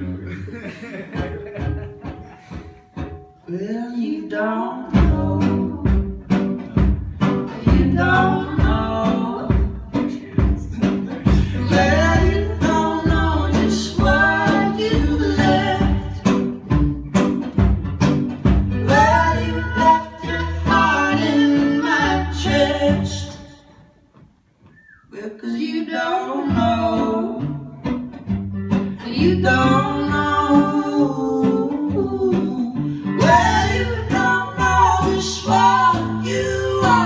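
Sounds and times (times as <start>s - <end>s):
person singing: 0.0s - 6.2s, 6.8s - 16.4s, 18.8s - 23.6s, 29.0s - 37.0s
acoustic guitar strummed: 1.2s - 4.0s, 4.9s - 23.1s.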